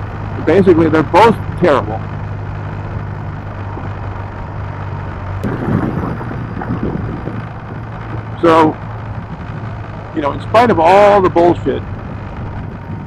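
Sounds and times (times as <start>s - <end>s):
motorcycle engine droning: 0.0s - 13.0s
road rumble: 0.0s - 13.0s
wind: 0.0s - 13.0s.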